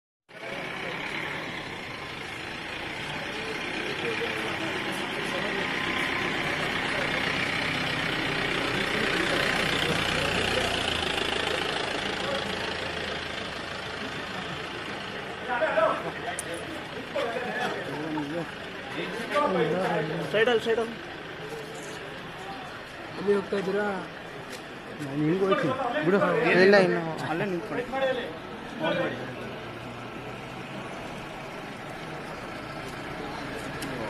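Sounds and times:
car engine and tyres passing: 0.3 - 34.0
people chattering: 0.3 - 34.0.

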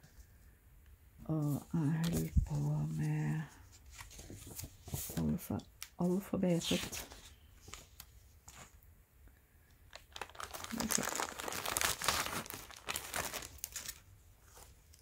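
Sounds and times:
plastic bag and paper crinkling: 1.3 - 8.8, 9.9 - 15.0.

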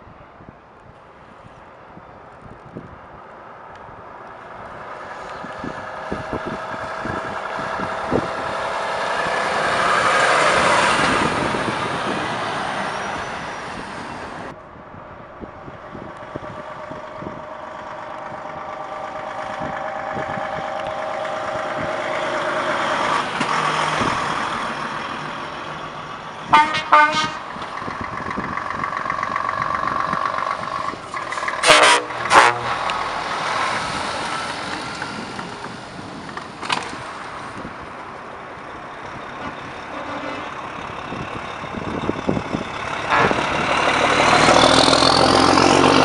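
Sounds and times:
diesel trucks driving past: 1.1 - 46.0
short loud horn blasts: 26.5 - 27.5, 31.6 - 32.8, 43.1 - 43.6.

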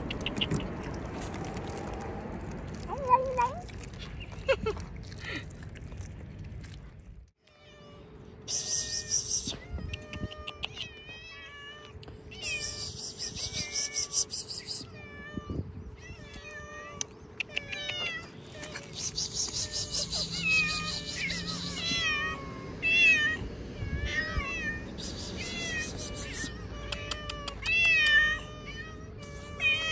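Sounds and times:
cats meowing: 13.5 - 29.9.

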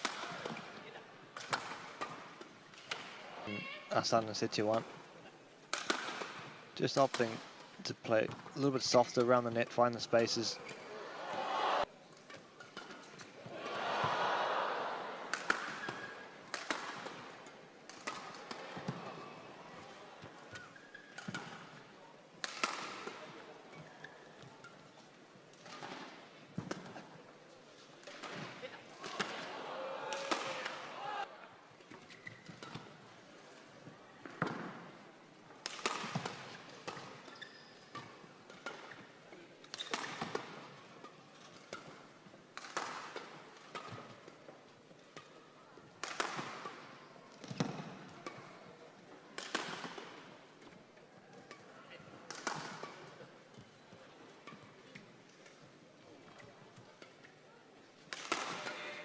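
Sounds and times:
rackets hitting shuttlecock: 0.0 - 0.8, 1.4 - 3.2, 5.7 - 7.6, 14.8 - 24.8, 28.0 - 31.1, 34.2 - 34.9, 35.6 - 44.4, 45.0 - 48.7, 49.3 - 53.8, 58.0 - 59.0.

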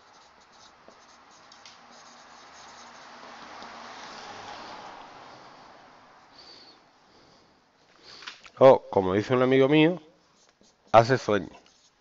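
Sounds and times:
marker pen scratching on whiteboard: 0.0 - 4.9, 10.2 - 12.0.

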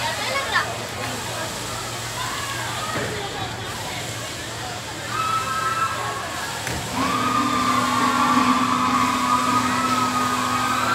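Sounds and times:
ride motor whine: 6.9 - 10.9.

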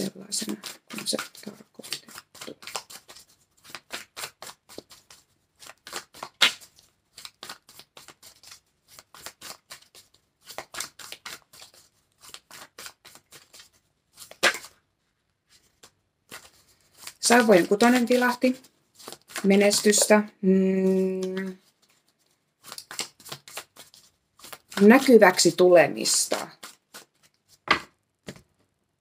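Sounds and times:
cards being shuffled: 0.0 - 14.8, 15.5 - 28.7.

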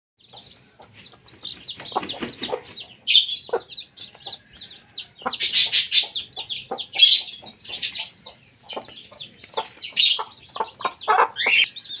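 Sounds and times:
chicks peeping: 0.2 - 12.0
hen clucking: 0.2 - 12.0.

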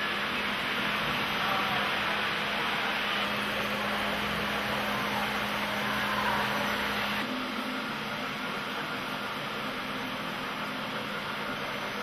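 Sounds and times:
hall hum and hiss: 0.0 - 12.0.

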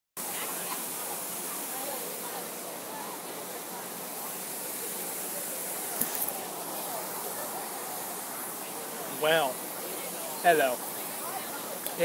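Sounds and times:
waterfall fountain rushing: 0.2 - 12.0.

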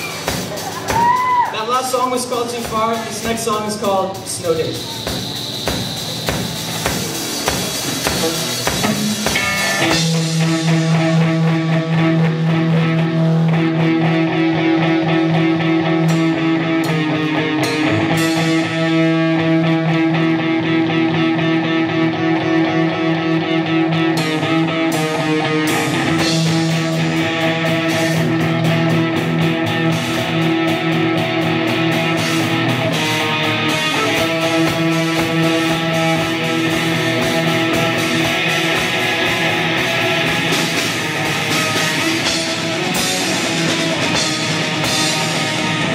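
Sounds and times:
distorted electric guitar chords: 0.0 - 45.9
drum kit playing: 0.0 - 45.9.

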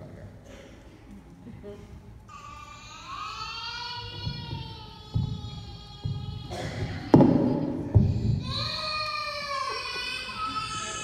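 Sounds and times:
toddler wailing cry: 2.3 - 11.0
dull thumps: 4.1 - 8.8.

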